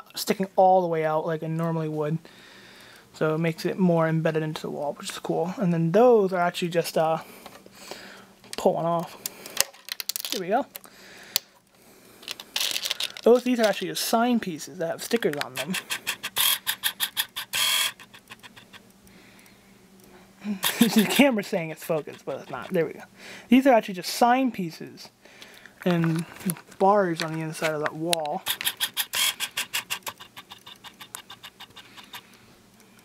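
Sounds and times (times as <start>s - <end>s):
plastic pieces clicking: 9.5s - 11.5s, 12.2s - 13.8s, 15.1s - 18.9s, 25.8s - 32.3s
plastic scraping rasp: 28.4s - 32.3s.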